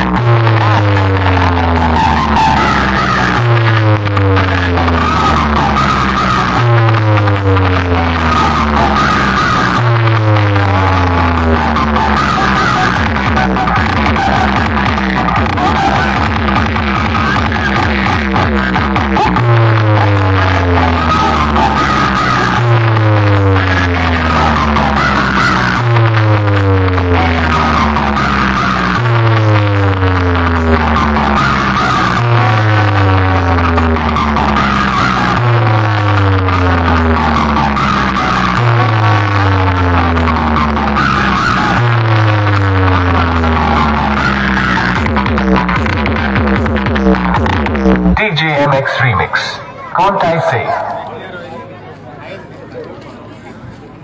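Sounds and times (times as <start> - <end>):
deep bass tone sweeping down: 0.0 - 49.0
music through speakers: 0.0 - 54.0.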